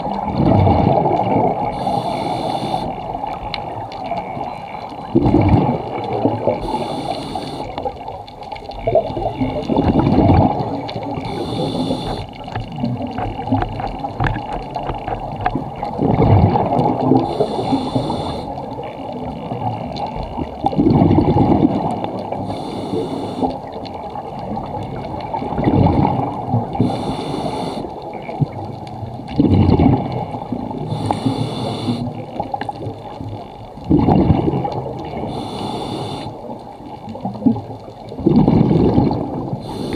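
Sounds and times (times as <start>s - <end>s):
exhaled bubbles rushing: 0.0s - 6.9s, 7.8s - 14.5s, 15.2s - 22.5s, 23.5s - 27.1s, 28.0s - 35.4s, 36.8s - 39.9s
breathing through a regulator: 1.7s - 3.2s, 6.5s - 8.0s, 11.2s - 12.4s, 17.2s - 18.7s, 22.3s - 23.7s, 26.8s - 28.0s, 30.8s - 32.2s, 35.2s - 36.5s, 39.6s - 39.9s.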